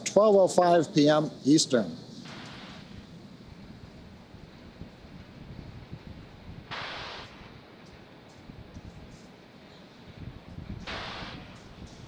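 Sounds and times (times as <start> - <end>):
burst of hiss: 2.2 - 3.0, 6.7 - 7.6, 10.8 - 12.0
wind rumbling on microphone: 2.8 - 9.3, 10.0 - 12.0.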